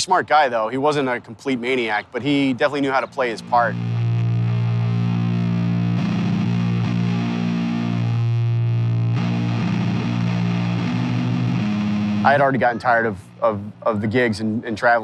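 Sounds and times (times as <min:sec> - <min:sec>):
distorted electric guitar chords: 0:03.2 - 0:13.9.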